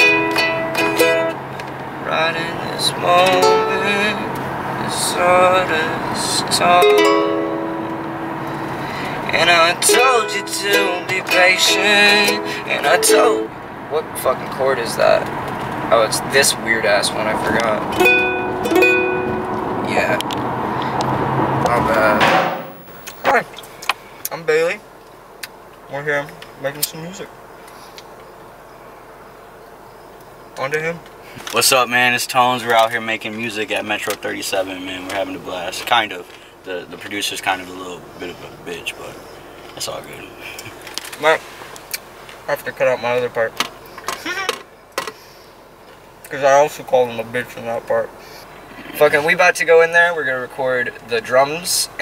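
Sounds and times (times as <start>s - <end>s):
ukulele strums: 0.0s - 1.5s, 3.2s - 3.9s, 6.7s - 8.7s, 9.4s - 13.6s, 17.9s - 19.7s
car cabin hum: 0.0s - 23.3s
car road noise: 0.0s - 52.0s.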